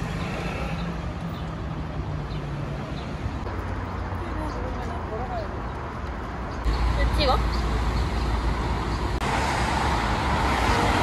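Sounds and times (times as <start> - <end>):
rumble of passing traffic: 0.0 - 11.0.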